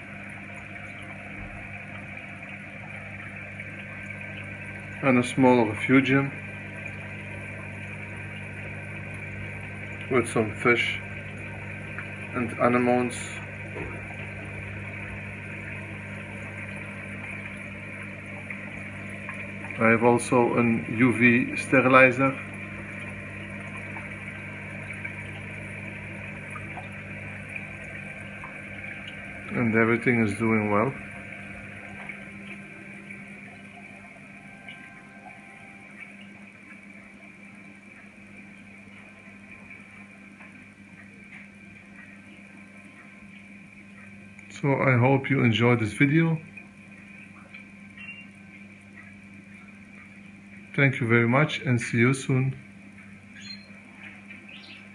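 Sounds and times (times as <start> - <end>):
electrical hum of pumps: 0.0 - 54.9
moving water: 0.0 - 54.9
small ticks: 46.7 - 50.6, 52.9 - 54.9.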